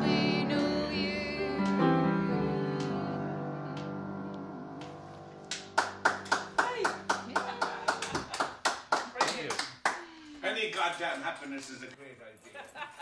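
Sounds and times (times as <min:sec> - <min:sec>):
people clapping: 0:05.5 - 0:11.9
people laughing: 0:07.3 - 0:08.4, 0:12.4 - 0:13.0.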